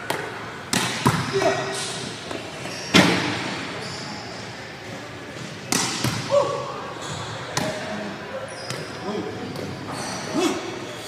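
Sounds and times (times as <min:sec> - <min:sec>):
volleyball impacts echoing: 0:00.0 - 0:01.5, 0:05.4 - 0:07.9.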